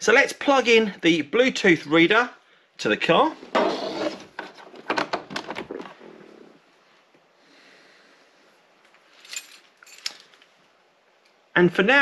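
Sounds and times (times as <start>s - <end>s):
plastic clicks and knocks: 4.4s - 6.0s.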